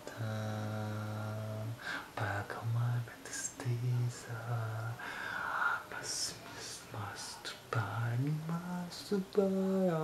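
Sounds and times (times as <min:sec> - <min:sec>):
man whispering: 0:00.0 - 0:08.7.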